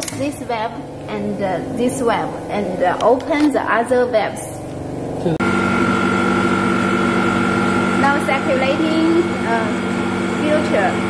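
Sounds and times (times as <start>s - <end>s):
mixing machine electric hum: 0.0s - 11.0s.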